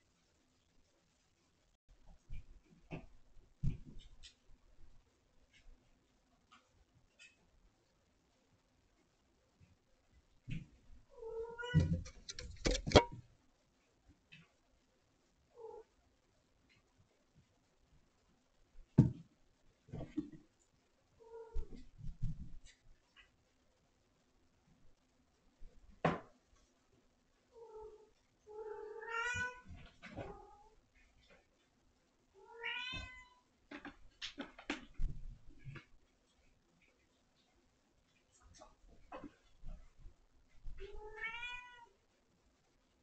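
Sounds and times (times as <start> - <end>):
cat meowing: 11.2 - 12.0, 27.6 - 29.7, 32.4 - 33.4, 40.8 - 41.9.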